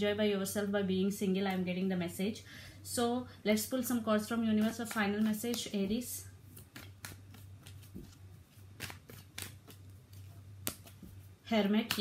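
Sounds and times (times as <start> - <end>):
cards being shuffled: 4.5 - 12.0.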